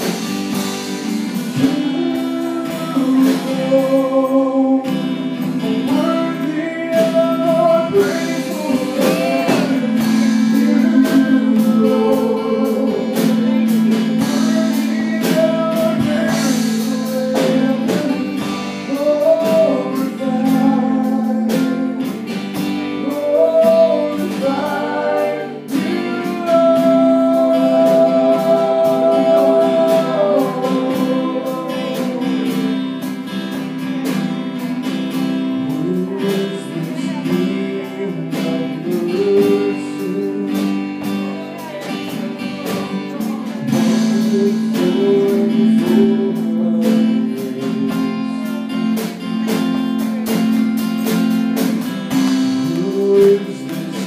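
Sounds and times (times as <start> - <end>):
person singing: 0.0 - 54.0
strummed acoustic guitar: 0.0 - 54.0.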